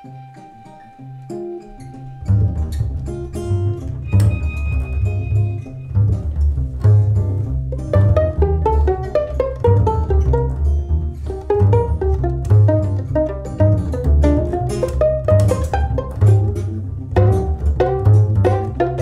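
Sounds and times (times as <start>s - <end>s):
acoustic guitar: 0.0s - 19.0s
violin: 0.0s - 19.0s
plucked double bass: 1.8s - 19.0s.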